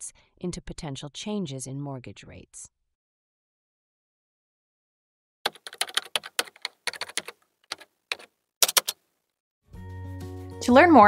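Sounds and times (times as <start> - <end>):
keyboard typing clicks: 5.5 - 9.0.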